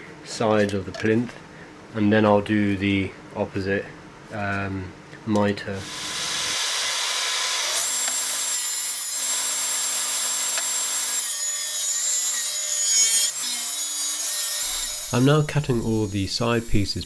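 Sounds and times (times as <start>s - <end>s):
table saw cutting board: 5.8s - 17.0s.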